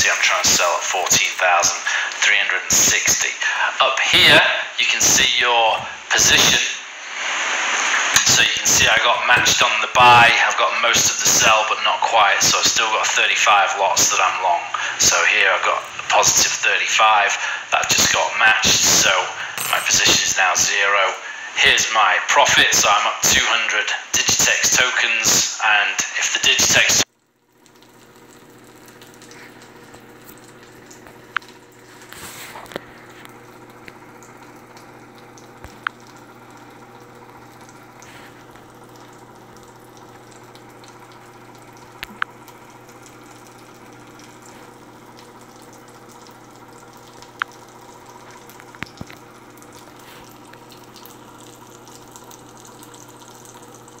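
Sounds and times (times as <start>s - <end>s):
low background hum and hiss: 0.0s - 54.0s.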